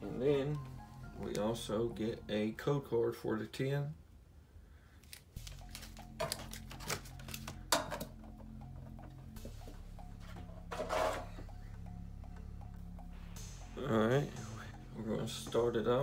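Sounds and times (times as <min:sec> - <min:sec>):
soft background music: 0:00.0 - 0:04.1, 0:05.0 - 0:16.0
cards clicking and crinkling: 0:05.0 - 0:08.1.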